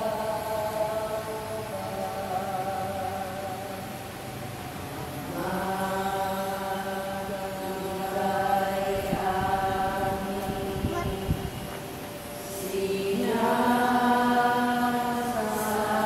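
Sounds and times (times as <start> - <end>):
congregation chanting long notes: 0.0 - 16.0.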